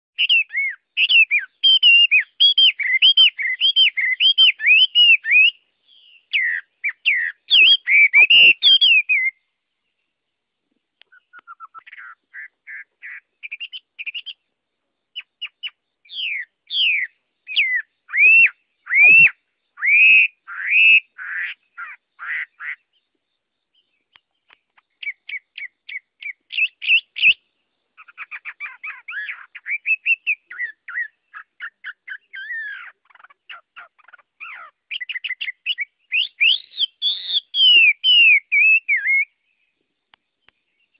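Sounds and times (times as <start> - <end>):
bird singing whistled phrases: 0.2 - 9.5, 11.1 - 14.4, 15.2 - 23.0, 23.8 - 27.4, 28.0 - 39.6.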